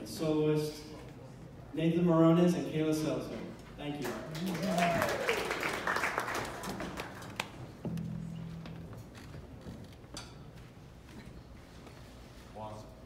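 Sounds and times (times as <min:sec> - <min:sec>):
audience applause: 0:04.0 - 0:07.8
audience cheer: 0:04.3 - 0:06.6.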